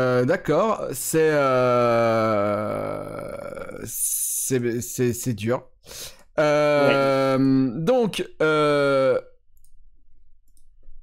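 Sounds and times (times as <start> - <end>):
man's drawn-out hesitation: 6.4 - 7.8.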